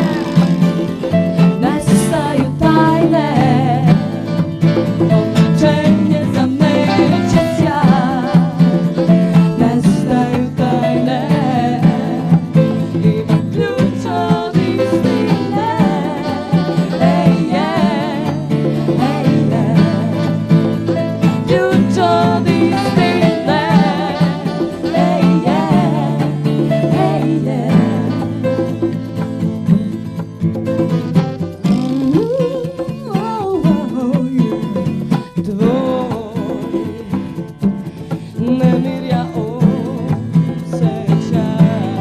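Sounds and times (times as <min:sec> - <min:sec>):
vocal group singing: 0:00.0 - 0:29.2, 0:31.7 - 0:42.0
live band playing: 0:00.0 - 0:42.0.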